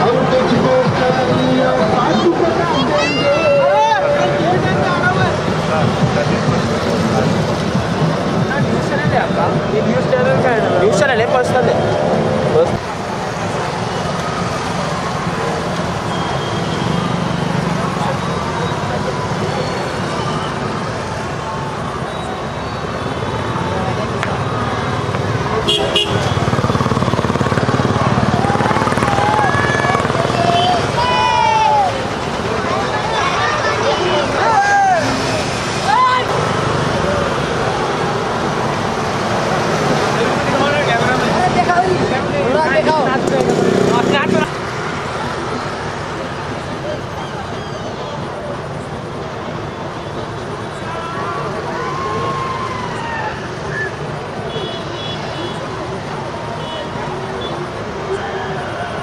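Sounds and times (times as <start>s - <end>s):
many overlapping voices: 0.0s - 59.0s
vehicle engines: 0.0s - 59.0s
vehicle horns tooting: 25.6s - 27.1s, 54.4s - 55.7s.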